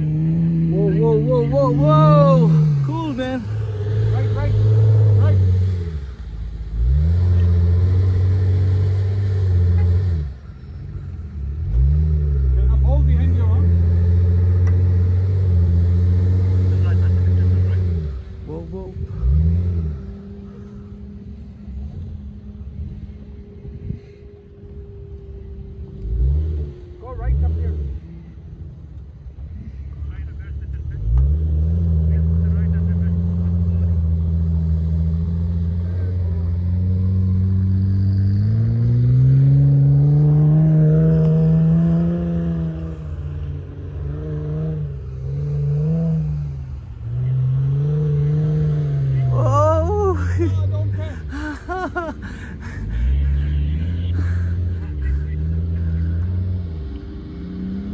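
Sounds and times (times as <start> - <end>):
engine revving hard: 0.0 - 10.4, 30.8 - 57.9.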